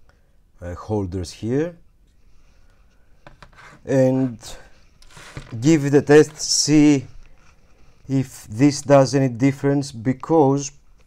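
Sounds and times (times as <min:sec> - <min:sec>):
faint rubbing on circuit board: 0:03.3 - 0:04.3, 0:05.0 - 0:06.6.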